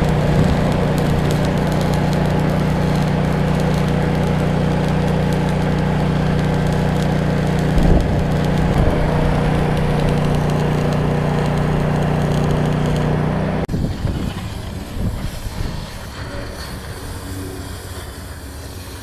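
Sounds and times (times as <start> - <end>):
engine droning: 0.0 - 19.0
welding arc crackling: 0.0 - 19.0.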